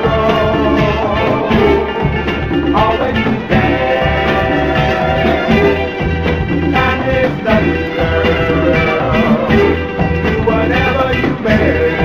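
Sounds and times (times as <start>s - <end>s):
soul music instrumental: 0.0s - 12.0s
steady bass: 0.0s - 12.0s.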